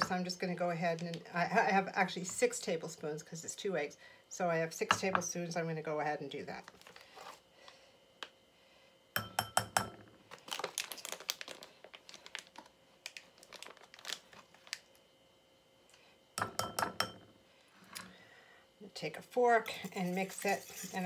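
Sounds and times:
metal spoon clinking on ceramic bowl: 9.2s - 10.0s
plastic bag crinkling: 10.3s - 15.0s.

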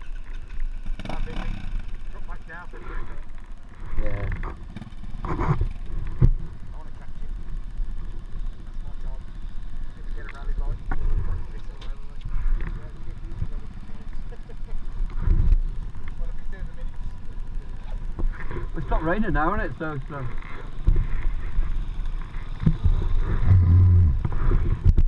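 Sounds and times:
motorcycle engines idling: 0.0s - 25.0s
faint voices: 5.2s - 22.6s.

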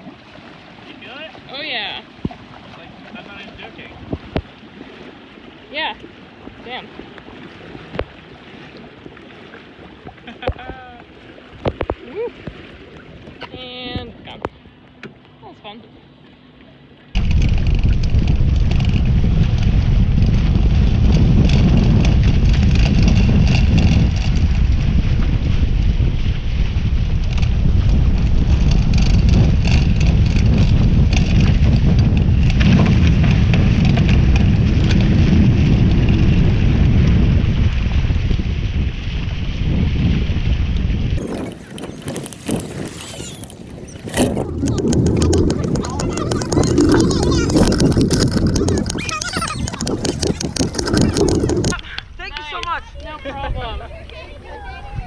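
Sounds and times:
wind buffeting microphone: 0.0s - 14.8s, 17.1s - 55.0s
water rushing off boat hull: 0.0s - 15.5s, 16.1s - 52.8s.

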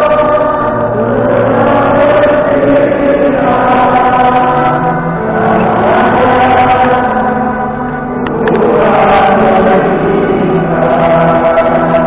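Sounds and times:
crowd singing in unison: 0.0s - 12.0s.

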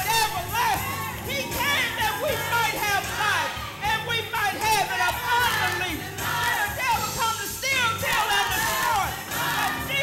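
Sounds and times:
lead singer singing and shouting: 0.0s - 10.0s
gospel choir singing: 0.8s - 10.0s.

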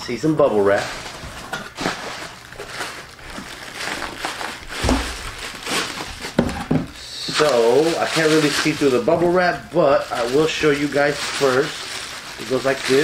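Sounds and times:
bubble wrap crinkling: 0.2s - 13.0s.

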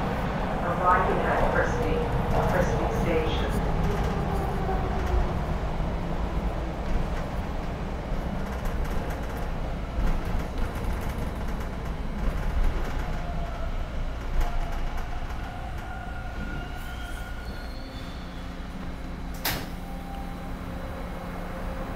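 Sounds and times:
high whines of braking train: 0.0s - 21.9s
subway train rumble: 0.0s - 21.9s.

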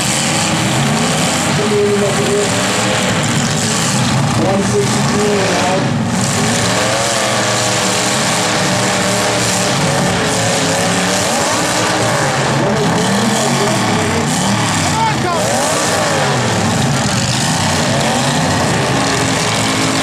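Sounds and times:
car engines revving hard: 0.0s - 20.0s.

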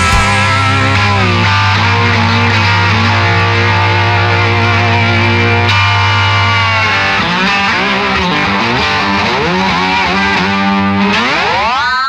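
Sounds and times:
slide guitar playing: 0.0s - 11.7s.

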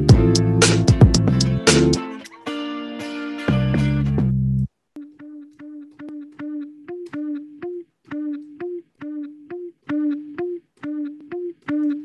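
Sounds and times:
repeated plucked guitar note: 5.0s - 12.0s.

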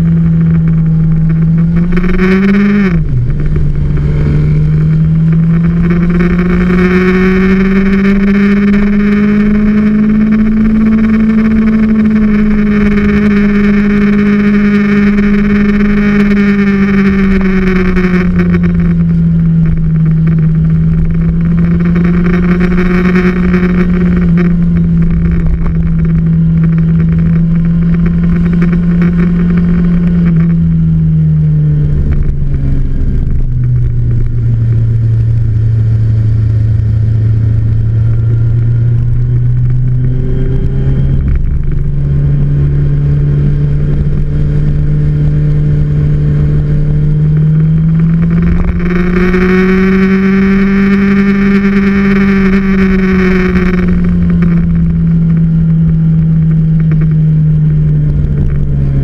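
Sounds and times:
motorcycle engine running: 0.0s - 59.0s
wind rumble on microphone: 0.0s - 59.0s.

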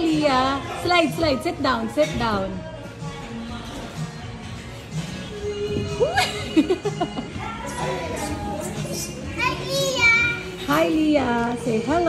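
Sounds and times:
children playing and chattering: 7.3s - 10.7s.

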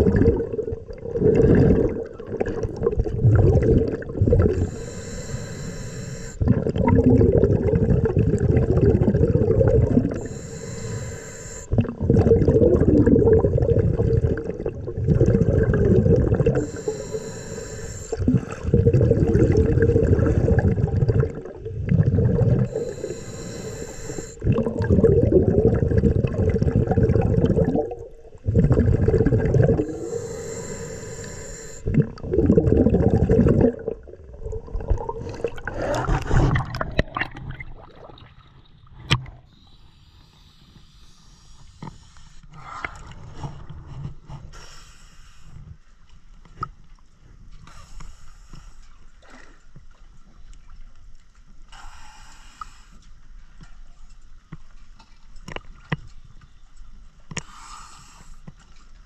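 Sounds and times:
exhaled bubbles rumbling: 0.0s - 39.5s
regulator hissing inhale: 4.4s - 6.4s, 10.0s - 11.7s, 16.4s - 18.7s, 22.6s - 24.4s, 29.6s - 31.9s, 39.5s - 43.4s, 44.5s - 45.7s, 47.7s - 49.0s, 51.7s - 53.0s, 57.4s - 58.5s.

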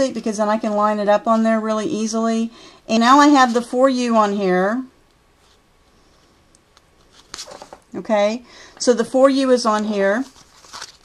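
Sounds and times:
cardstock rustles and clicks: 10.2s - 11.0s.

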